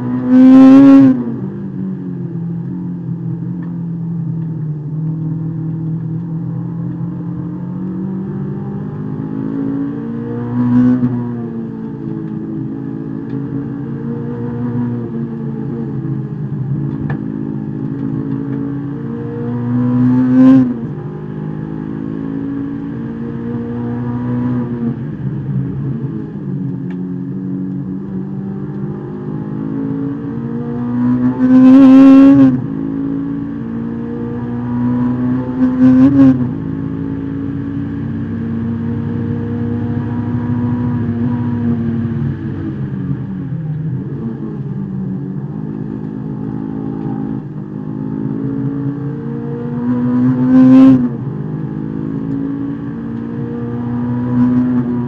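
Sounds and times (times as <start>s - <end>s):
car engine revving from inside cabin: 0.0s - 1.4s, 5.0s - 55.0s.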